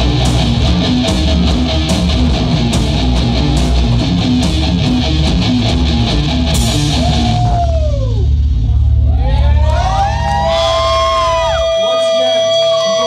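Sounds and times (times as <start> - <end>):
low bass drone: 0.0 - 11.7
electric guitar bending notes: 0.0 - 11.8.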